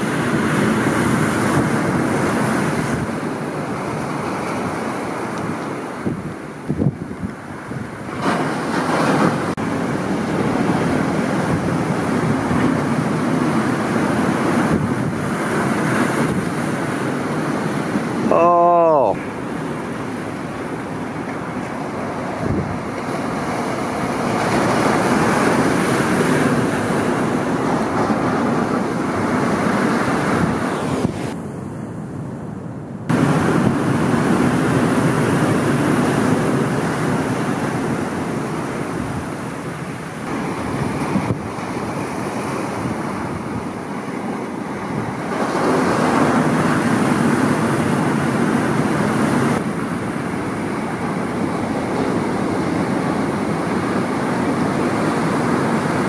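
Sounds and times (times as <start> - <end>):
wind buffeting microphone: 0.0 - 18.3, 19.2 - 32.3, 33.1 - 56.0
ocean surf breaking: 0.0 - 32.4, 33.0 - 56.0.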